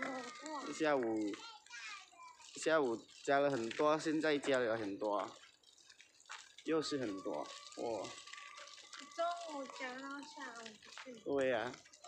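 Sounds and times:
people talking: 0.0 - 2.0, 2.6 - 5.3, 6.7 - 8.2, 9.0 - 11.8.

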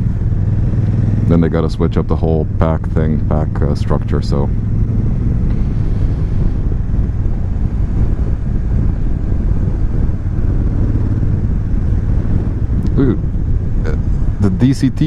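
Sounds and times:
motorcycle engine cruising: 0.0 - 15.0
wind rushing on microphone: 0.0 - 15.0.

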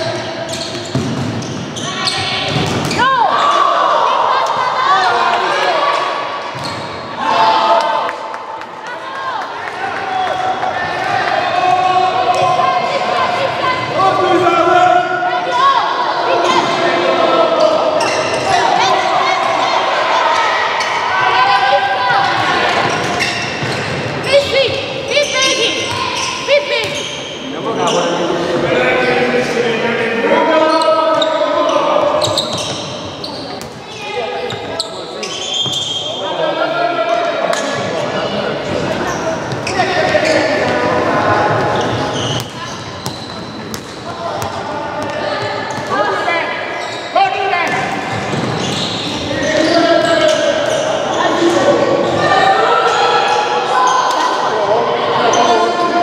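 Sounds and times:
people shouting in hall: 2.2 - 6.4, 7.1 - 22.9, 49.3 - 56.0.

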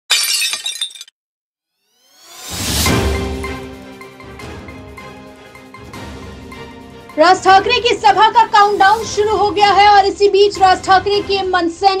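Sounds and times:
glass shattering: 0.1 - 1.2.

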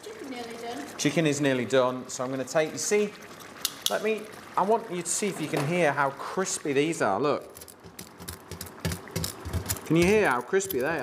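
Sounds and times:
metal tongs clicking: 7.5 - 11.0.

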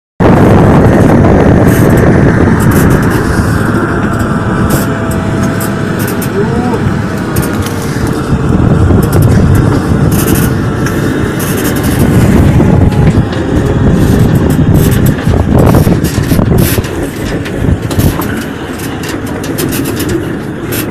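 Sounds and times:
military vehicles rumbling past: 0.2 - 20.9.

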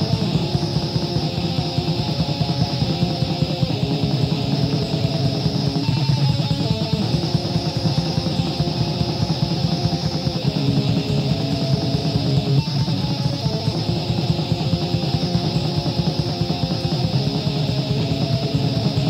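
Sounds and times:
distorted electric guitar riff: 0.0 - 19.0
fast dense drumming: 0.0 - 19.0
lo-fi hiss: 0.0 - 19.0.

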